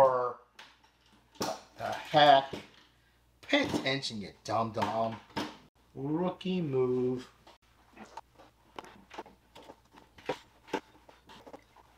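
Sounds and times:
clicks and rustles of handling: 0:07.4 - 0:11.9.

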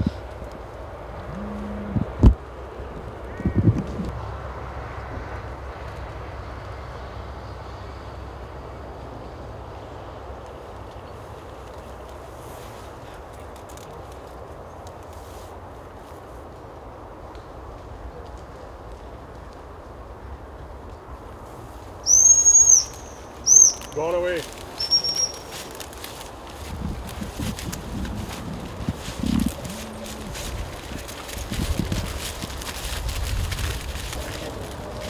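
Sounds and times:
dog whistle blasts: 0:22.1 - 0:23.8, 0:24.8 - 0:25.4.

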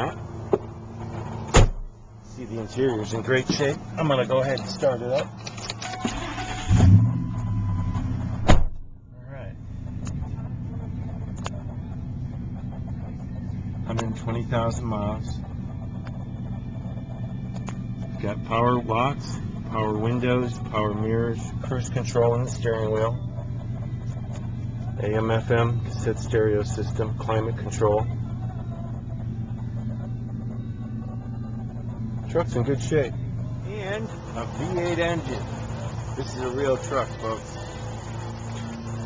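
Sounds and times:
truck engine idling: 0:00.0 - 0:39.0
loud thump: 0:01.5 - 0:01.9, 0:08.4 - 0:08.9
steady tone: 0:07.1 - 0:39.0.

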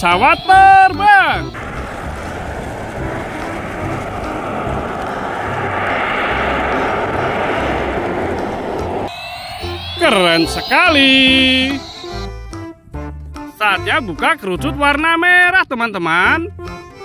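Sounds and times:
aircraft engines droning: 0:01.3 - 0:12.5.

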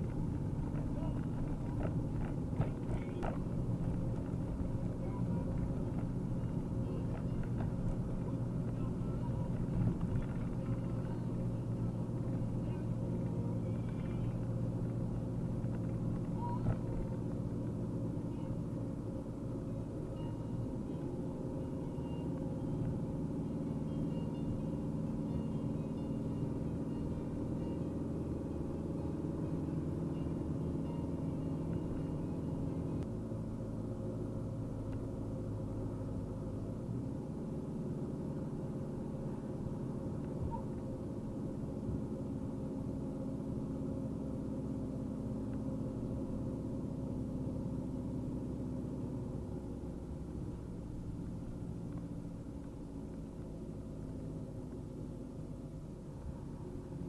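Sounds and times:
diesel engine hum: 0:00.0 - 0:57.0.

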